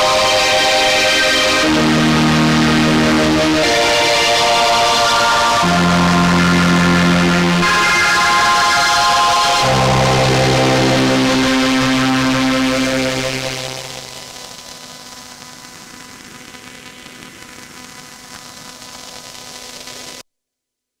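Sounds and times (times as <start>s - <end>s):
string synth chord: 0.0s - 14.2s.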